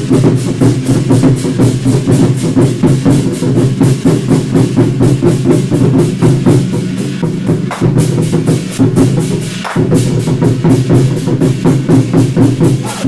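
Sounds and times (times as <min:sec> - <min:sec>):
drummers beating large drums: 0:00.0 - 0:13.0.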